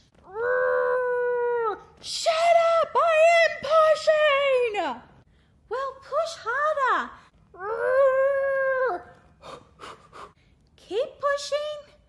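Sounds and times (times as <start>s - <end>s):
woman screaming: 0.3s - 4.6s.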